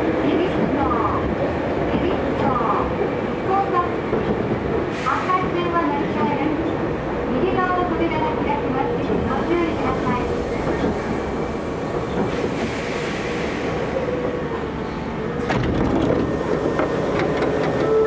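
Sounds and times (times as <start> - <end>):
train wheels running: 15.4 - 18.0.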